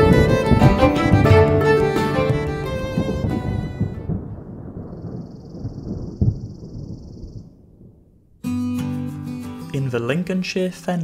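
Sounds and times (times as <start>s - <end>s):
low thunder-like rumble: 2.4s - 8.4s.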